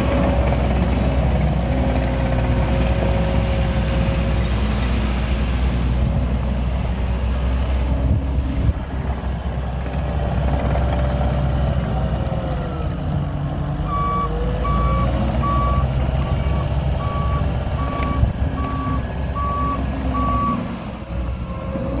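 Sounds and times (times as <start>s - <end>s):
diesel engine running: 0.0s - 22.0s
reverse alarm beeping: 13.9s - 20.6s.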